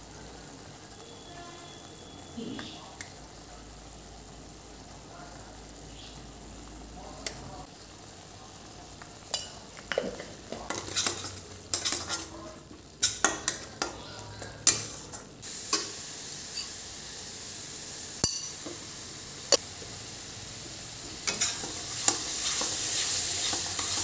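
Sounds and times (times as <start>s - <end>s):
faint frying sizzle: 0.0s - 24.0s
steel spatula scraping a pan: 10.7s - 12.4s, 21.2s - 24.0s.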